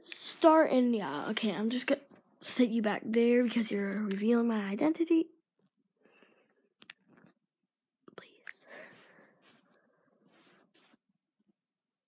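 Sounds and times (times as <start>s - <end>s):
person whispering: 8.1s - 9.3s.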